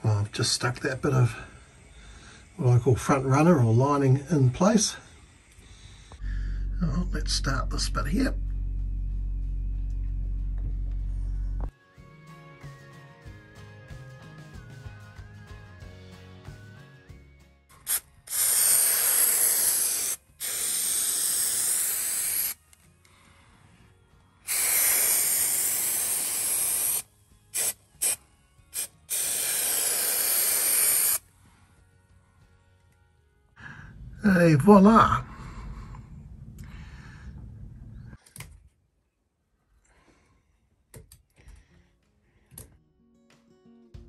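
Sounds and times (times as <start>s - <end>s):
soft music: 6.6s - 18.4s, 22.5s - 24.6s, 25.3s - 35.5s, 41.6s - 44.0s
aerosol can spraying: 17.8s - 22.6s, 24.5s - 31.2s.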